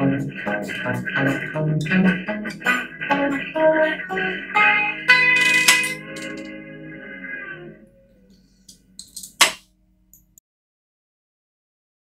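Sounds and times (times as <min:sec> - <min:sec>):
guitar notes and strum: 0:00.0 - 0:08.3.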